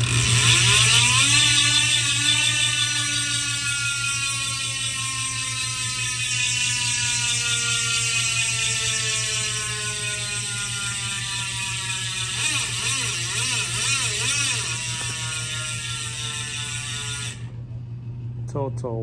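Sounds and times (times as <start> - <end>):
bicycle freehub buzzing: 0.0 - 17.7.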